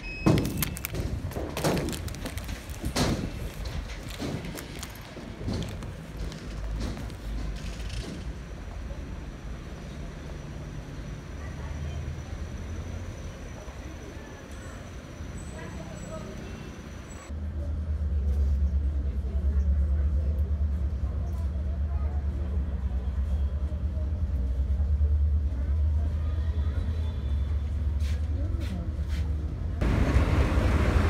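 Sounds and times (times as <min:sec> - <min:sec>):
train running rumble: 0:00.8 - 0:14.1.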